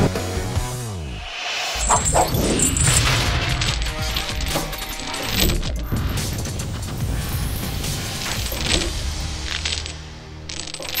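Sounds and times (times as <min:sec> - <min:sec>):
chains clinking and rattling: 0:01.8 - 0:11.0.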